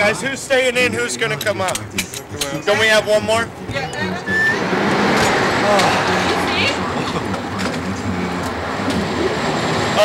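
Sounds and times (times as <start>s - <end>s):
faint muffled voices: 0.0s - 10.0s
steady noisy rumble: 0.0s - 10.0s.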